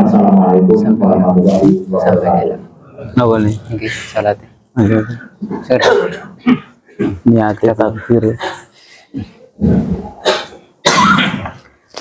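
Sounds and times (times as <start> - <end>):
man coughing and clearing throat: 4.8 - 7.4, 8.0 - 9.5, 10.1 - 11.6.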